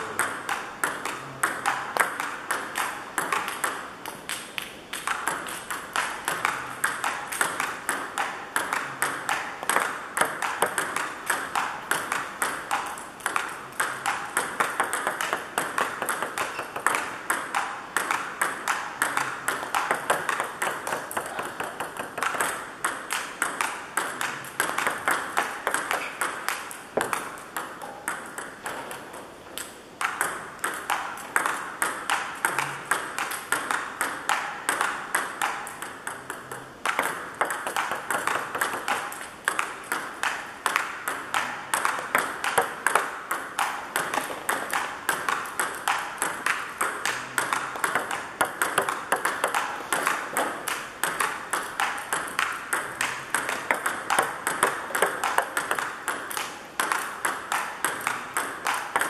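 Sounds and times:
table tennis ball clicks: 0.0s - 59.0s.

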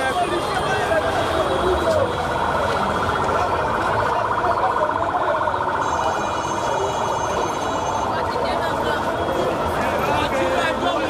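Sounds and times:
large crowd noise: 0.0s - 11.0s.

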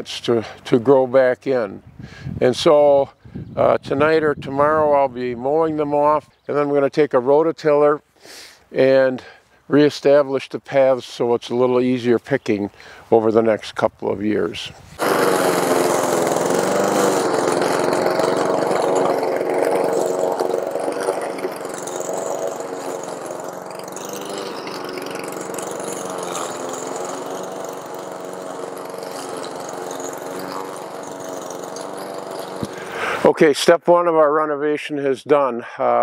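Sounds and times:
lawn mower running: 15.0s - 33.4s.

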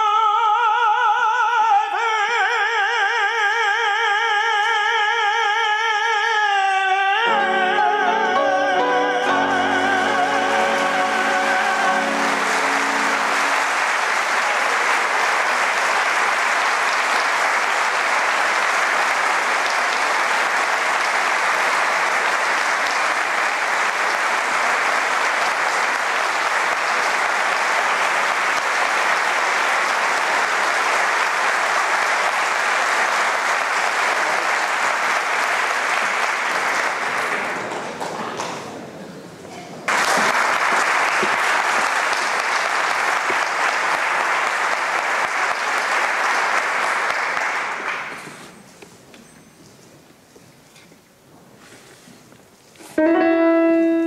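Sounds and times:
audience applauding: 7.3s - 39.0s, 39.8s - 48.9s.

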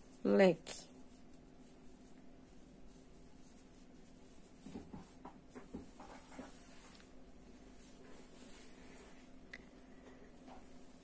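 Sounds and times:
crochet hook scratching yarn: 0.0s - 6.9s
low steady hum: 0.0s - 11.0s.

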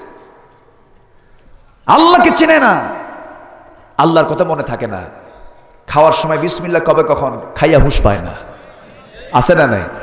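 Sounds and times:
man speaking over loudspeakers: 1.8s - 10.0s.

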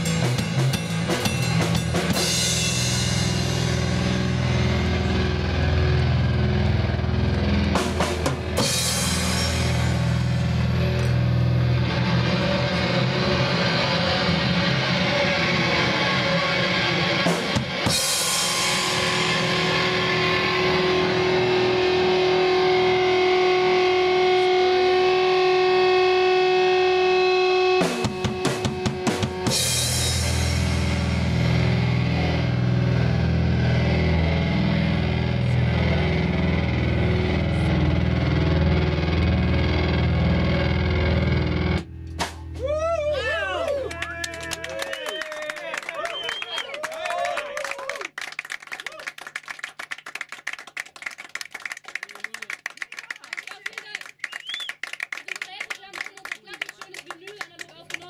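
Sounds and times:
drum kit with cymbals: 0.0s - 4.8s, 7.5s - 11.6s, 17.2s - 19.7s, 27.8s - 31.6s, 42.0s - 42.8s
electric bass guitar: 0.0s - 45.0s.

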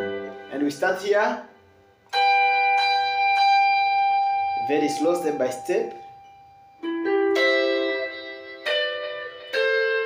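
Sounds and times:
electric guitar high notes: 0.0s - 10.0s.

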